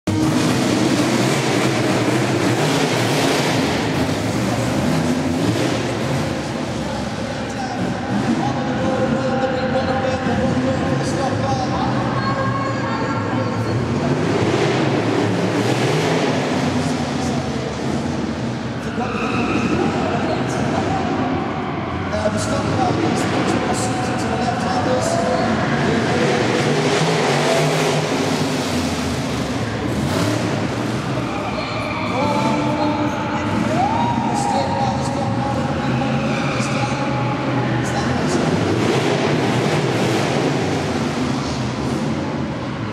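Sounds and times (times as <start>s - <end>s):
car engine at high speed: 0.0s - 42.9s
road and wind noise: 0.0s - 42.9s.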